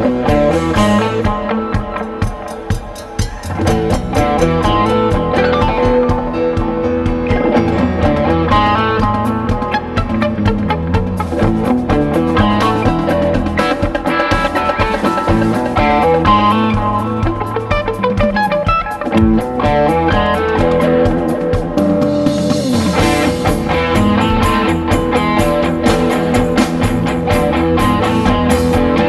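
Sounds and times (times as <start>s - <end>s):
bass guitar: 0.0s - 29.0s
drum kit with cymbal pulse: 0.0s - 29.0s
electric guitars: 0.0s - 29.0s.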